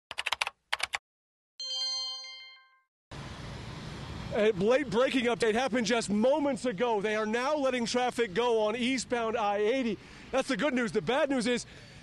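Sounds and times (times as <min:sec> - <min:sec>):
bright chime: 0:01.6 - 0:02.9.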